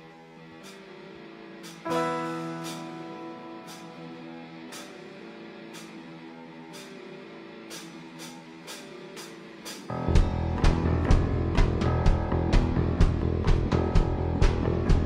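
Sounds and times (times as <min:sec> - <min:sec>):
rock band playing: 0:01.6 - 0:06.0, 0:07.7 - 0:15.0.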